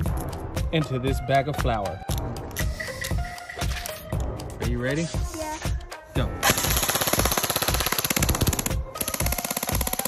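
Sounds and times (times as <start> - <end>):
background music with beat: 0.0 - 10.0
airsoft gun rapid firing: 6.4 - 10.0.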